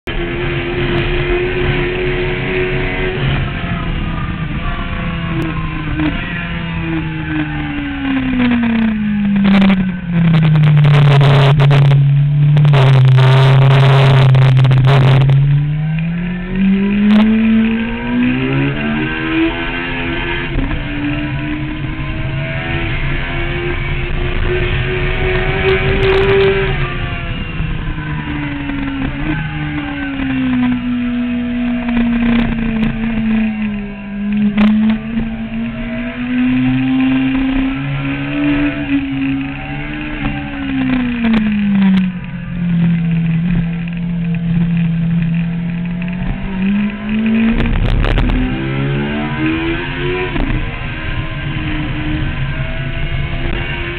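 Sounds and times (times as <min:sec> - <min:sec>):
motorcycle engine revving: 0:00.0 - 0:53.9.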